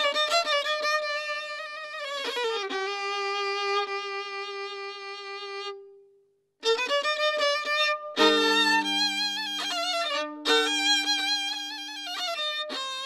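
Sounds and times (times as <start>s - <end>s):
solo violin playing slow tune: 0.0s - 6.0s, 6.6s - 13.0s.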